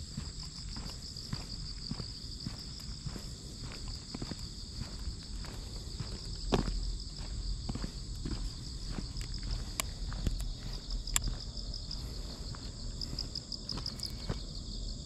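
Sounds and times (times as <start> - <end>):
footsteps on asphalt: 0.0 - 14.5
high-pitched insect chorus: 0.0 - 15.0.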